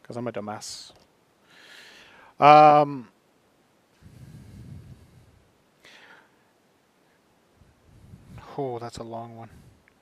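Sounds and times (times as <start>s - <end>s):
man exhaling into microphone: 4.0s - 6.3s.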